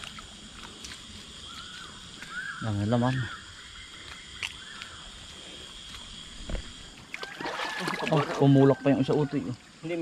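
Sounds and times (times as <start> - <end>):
water sloshing and splashing: 5.9 - 9.1.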